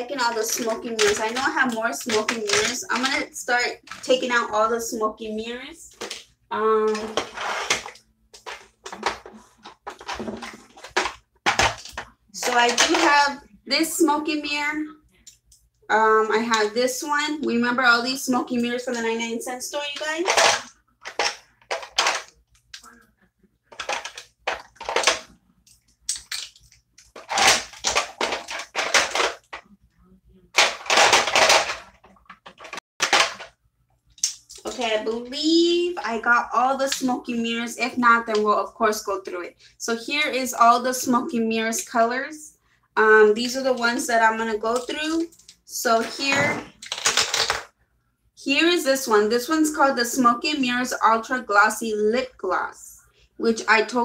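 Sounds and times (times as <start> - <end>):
plastic tubes clicking and clattering: 0.0 - 4.4, 5.9 - 13.4, 19.7 - 23.1, 23.7 - 29.8, 30.5 - 37.3, 43.5 - 47.7.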